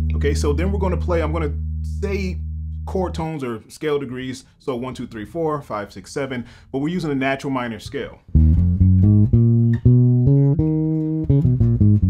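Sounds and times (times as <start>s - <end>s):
electric bass guitar plucked notes: 0.0s - 3.5s, 8.3s - 12.0s.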